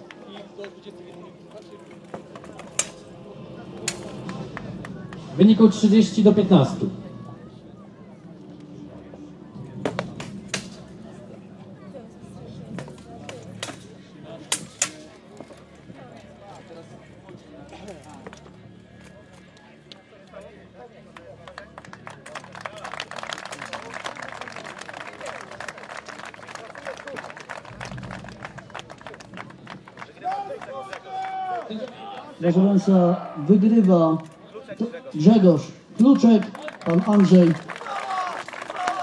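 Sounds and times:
crowd applauding: 0.0 - 2.7, 21.1 - 32.9, 36.0 - 39.0.

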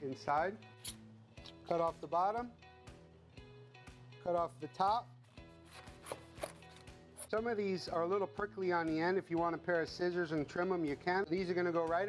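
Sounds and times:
knife crunching through artichoke: 5.7 - 7.3.

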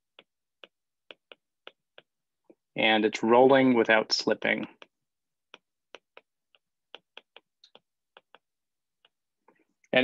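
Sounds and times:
stylus tapping on glass screen: 0.0 - 2.6, 4.7 - 9.6.

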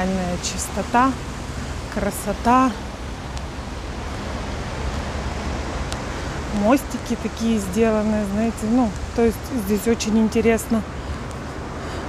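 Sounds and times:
steady rushing outdoor noise: 0.0 - 12.0
unsteady low rumble: 0.0 - 12.0.

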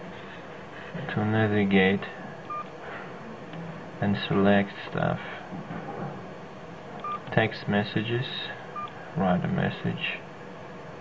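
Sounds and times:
electronic key-press beep: 2.5 - 2.7.

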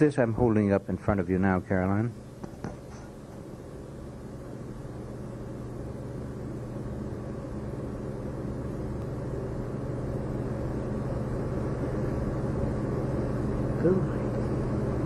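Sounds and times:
low hum with hiss: 0.0 - 15.0.

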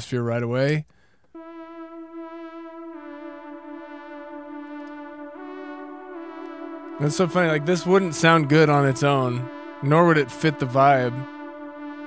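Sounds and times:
synth lead holding long notes: 1.4 - 12.0.

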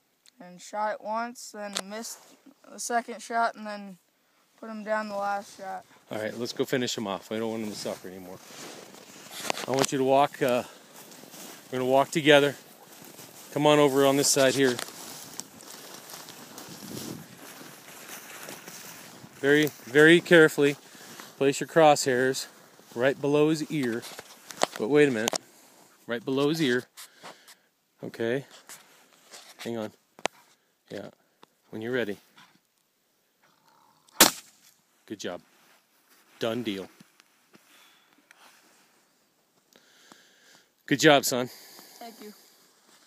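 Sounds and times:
footsteps crunching in snow: 5.1 - 26.7, 35.4 - 37.7
rifle shot: 34.2 - 34.6.

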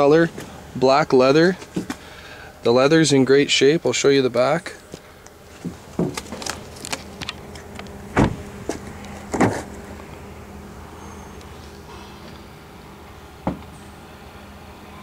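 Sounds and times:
car door thumps: 8.1 - 9.7, 13.4 - 13.7.

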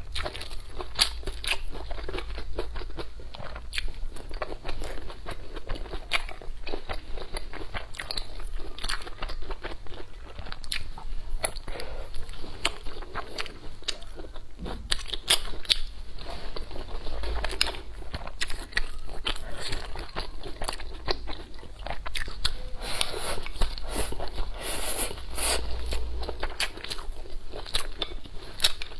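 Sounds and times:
crunchy chewing: 0.0 - 28.9.

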